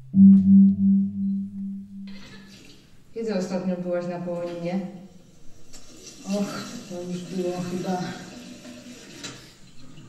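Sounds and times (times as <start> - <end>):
low sustained musical note: 0.0 - 2.2.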